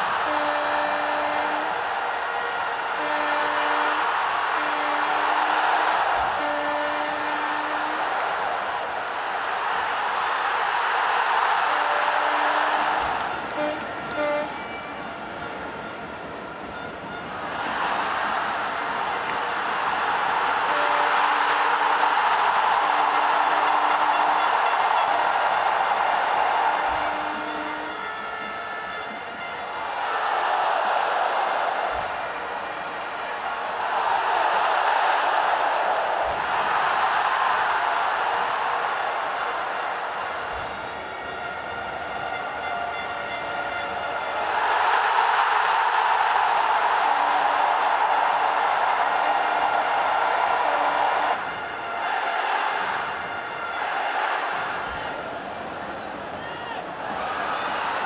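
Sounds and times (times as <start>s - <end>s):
horn blasts: 0.0s - 55.2s
stadium crowd roaring: 0.0s - 58.0s.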